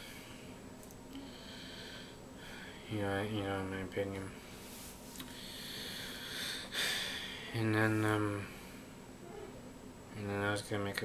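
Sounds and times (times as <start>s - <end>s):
man breathing through nose: 1.2s - 2.8s, 5.2s - 7.5s.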